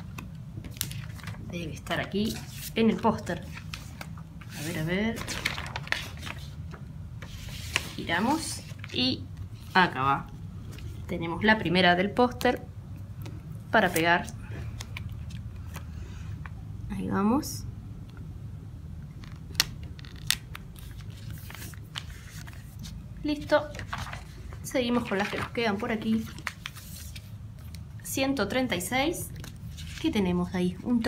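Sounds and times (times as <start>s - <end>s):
paper pages rubbing: 2.2s - 6.6s, 7.2s - 8.9s, 20.0s - 23.0s, 23.7s - 27.3s.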